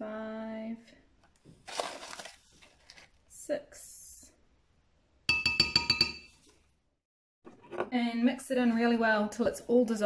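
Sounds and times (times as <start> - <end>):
spoon clinking against glass: 5.3 - 6.4.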